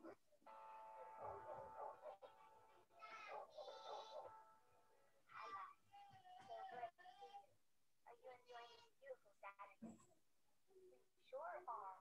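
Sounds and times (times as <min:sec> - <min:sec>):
faint background music: 0:00.0 - 0:10.1.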